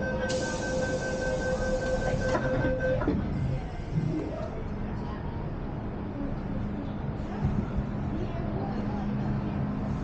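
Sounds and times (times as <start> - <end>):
pulsing door warning beep: 0.0 - 3.1
stopped train rumble: 0.0 - 10.0
train doors shutting knock: 0.3 - 3.3.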